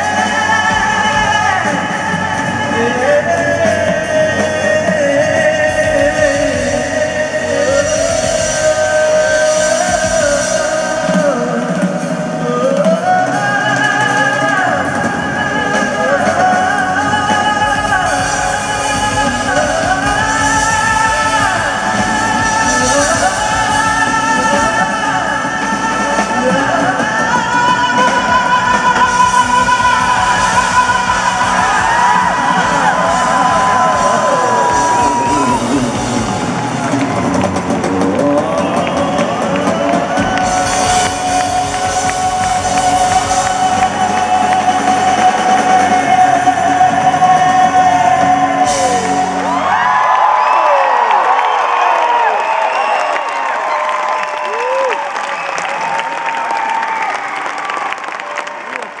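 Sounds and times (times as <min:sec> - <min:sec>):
live band playing: 0:00.0 - 0:59.0
audience cheering and whooping: 0:15.5 - 0:59.0
audience clapping: 0:29.6 - 0:46.0, 0:49.5 - 0:59.0.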